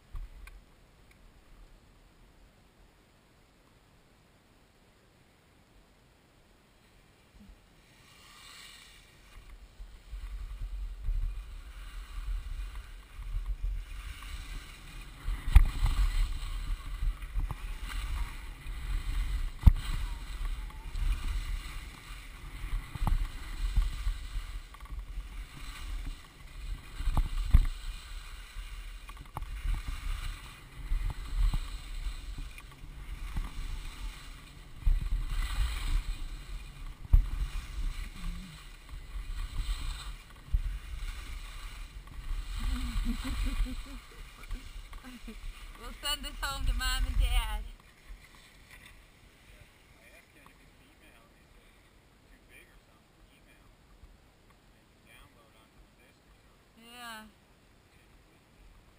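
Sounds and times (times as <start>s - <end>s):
skis scraping over snow: 6.8s - 52.8s
wind buffeting microphone: 9.8s - 47.8s.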